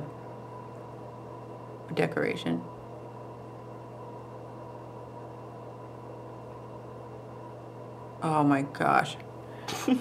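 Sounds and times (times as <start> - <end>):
faint constant whine: 0.0 - 10.0
low background hum: 0.0 - 10.0.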